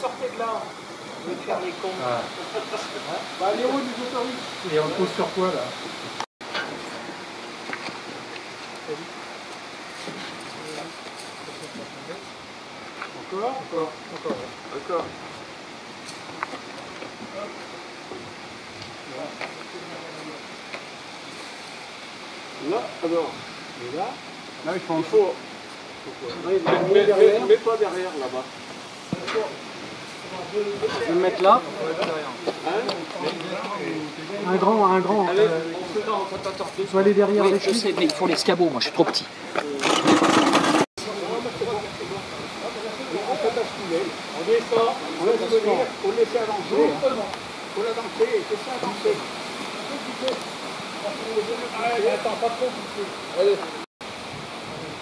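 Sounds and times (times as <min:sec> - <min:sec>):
outdoor background hiss: 0:00.0 - 0:55.0
man speaking: 0:30.4 - 0:39.8.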